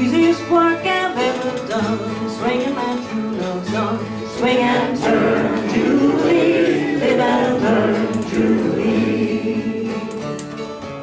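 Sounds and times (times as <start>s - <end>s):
acoustic guitar: 0.0s - 11.0s
banjo: 0.0s - 11.0s
group singing in harmony: 2.7s - 10.5s.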